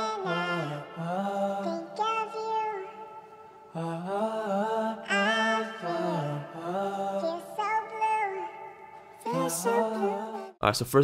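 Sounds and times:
man singing in stacked harmony: 0.0 - 2.6, 3.7 - 7.8, 9.2 - 10.6.

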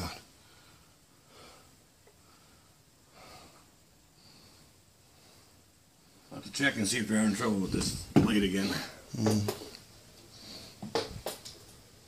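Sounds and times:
soft breathing close to microphone: 0.3 - 6.4, 10.2 - 11.0.

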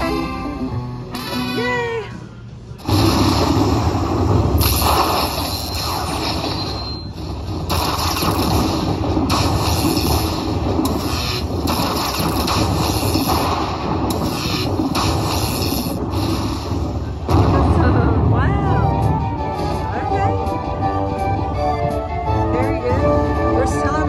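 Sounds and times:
rumbling thunder-like strikes: 2.8 - 20.2.

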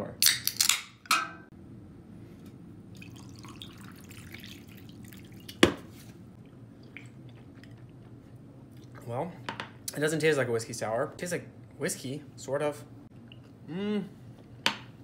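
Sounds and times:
liquid trickling over ice: 3.0 - 5.6.

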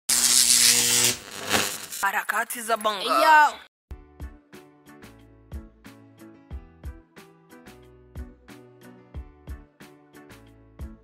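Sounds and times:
loud hissing buzz: 0.1 - 2.0.

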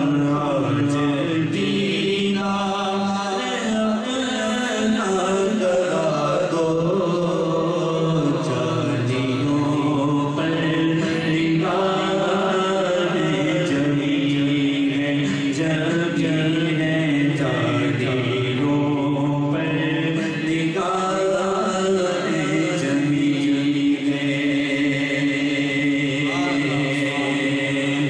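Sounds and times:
man singing unaccompanied: 0.0 - 28.0.

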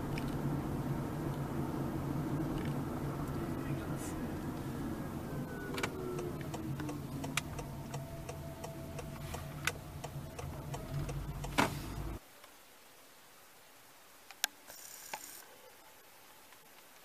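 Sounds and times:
car cabin low rumble: 0.0 - 12.2.

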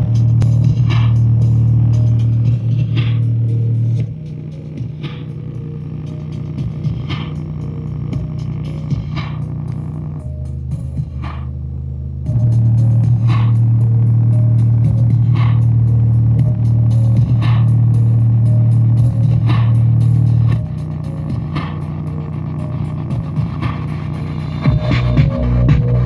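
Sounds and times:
bass-heavy music from speaker: 0.0 - 26.0.

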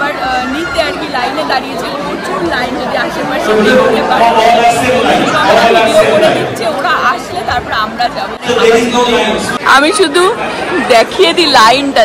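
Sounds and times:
woman talking: 0.0 - 4.3, 6.6 - 8.4, 9.6 - 12.0
crowd chatter in echoing hall: 0.0 - 12.0.

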